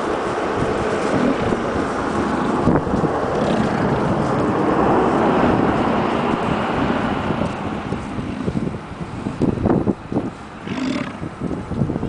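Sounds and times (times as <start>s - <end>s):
bison bellowing: 10.6s - 11.3s.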